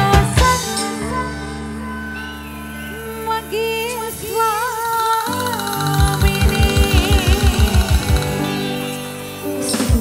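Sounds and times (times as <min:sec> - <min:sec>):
held wavering melody line: 0:00.0 - 0:09.8
fast deep drum beats: 0:05.4 - 0:08.7.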